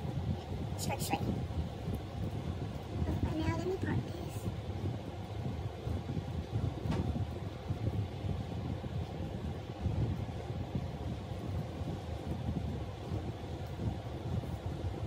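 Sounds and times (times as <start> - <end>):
low rumbling background noise: 0.0 - 15.0.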